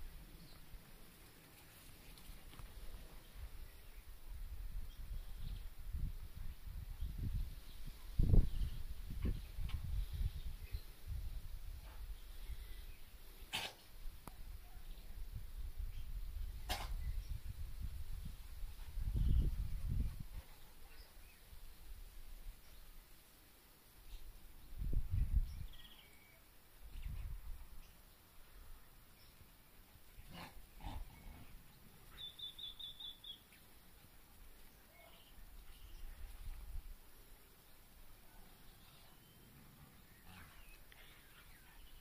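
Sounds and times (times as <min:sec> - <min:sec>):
dog sneezing: 0:13.5 - 0:13.8
small bird chirping: 0:31.2 - 0:33.7.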